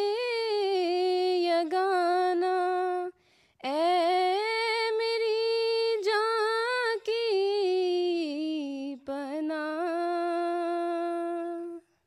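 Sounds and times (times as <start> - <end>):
woman chanting: 0.0 - 11.9.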